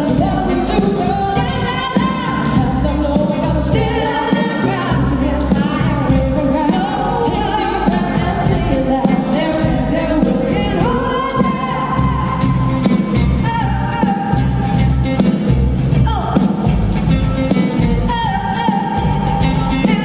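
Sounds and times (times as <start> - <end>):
woman singing: 0.0 - 15.0, 16.0 - 16.6, 17.4 - 20.0
bass guitar: 0.0 - 20.0
drums and cymbals: 0.0 - 20.0.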